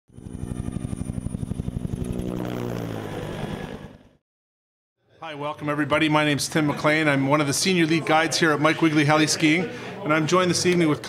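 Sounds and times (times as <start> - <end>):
helicopter engine whine: 0.1 - 4.2
helicopter rotor beating: 0.1 - 4.2.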